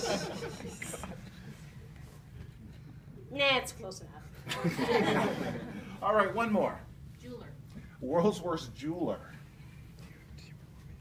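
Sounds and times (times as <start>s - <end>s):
audience laughter: 0.0s - 1.2s, 4.5s - 5.9s
low steady background hum: 0.0s - 11.0s.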